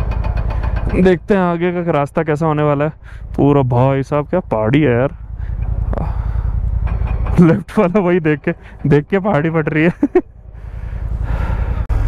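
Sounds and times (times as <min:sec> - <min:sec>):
motorcycle engine running: 0:00.0 - 0:12.0
wind and road noise: 0:00.0 - 0:12.0.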